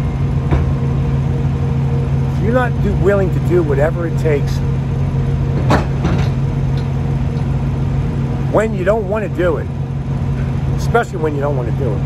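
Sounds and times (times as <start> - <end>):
diesel engines idling: 0.0 - 12.0
steady whine: 0.0 - 12.0.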